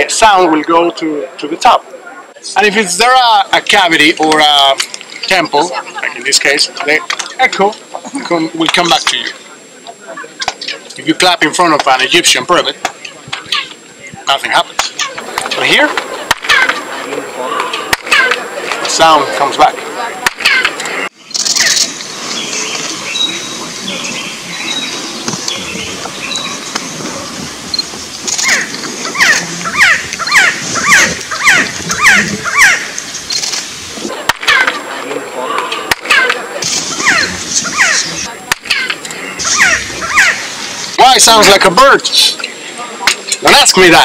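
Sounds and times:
chirped echo: 20.4s - 33.9s, 34.5s - 40.9s.

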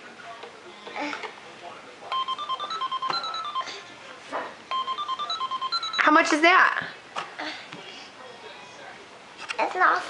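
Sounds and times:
toy cash register beeping tune: 2.1s - 3.8s, 4.7s - 6.2s.

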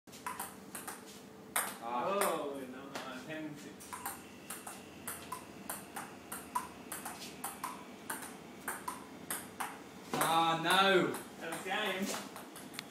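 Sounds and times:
table tennis ball hits: 0.1s - 1.0s, 1.6s - 2.4s, 3.9s - 12.9s.

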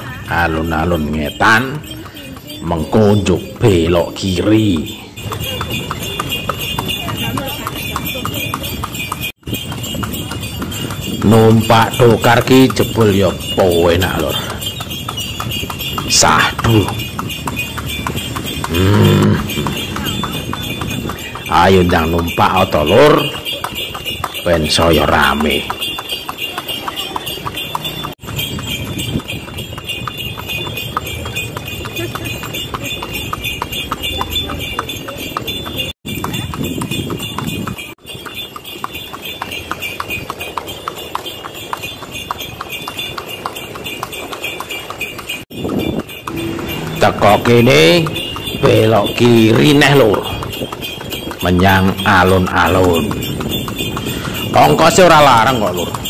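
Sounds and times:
person speaking: 0.0s - 5.8s, 18.6s - 20.5s, 46.4s - 50.4s
hooves clip-clopping on asphalt: 0.0s - 56.0s.

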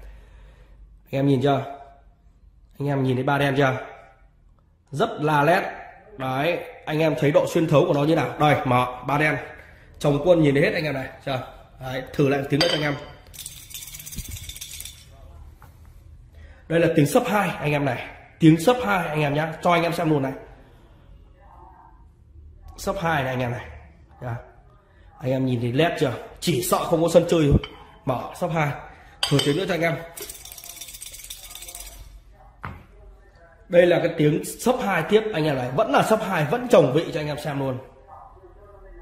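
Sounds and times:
discs rattling in ceramic bowl: 12.7s - 15.1s, 29.2s - 32.1s.

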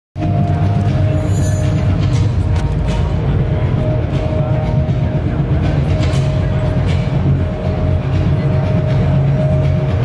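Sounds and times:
crowded hall rumble: 0.2s - 10.0s.

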